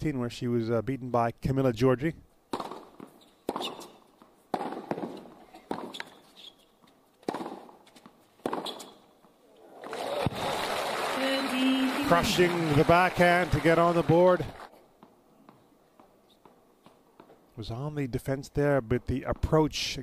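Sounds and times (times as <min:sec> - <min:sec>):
tennis racket striking ball: 0:02.5 - 0:06.3, 0:07.2 - 0:09.1
crowd applause: 0:09.7 - 0:14.7.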